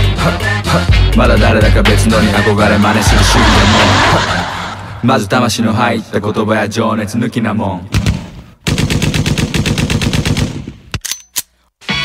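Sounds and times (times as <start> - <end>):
hip hop beat: 0.0 - 6.1.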